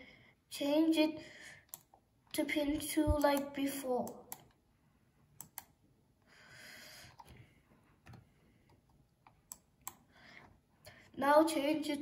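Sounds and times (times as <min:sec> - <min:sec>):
mouse and keyboard clicks: 0:03.1 - 0:04.6.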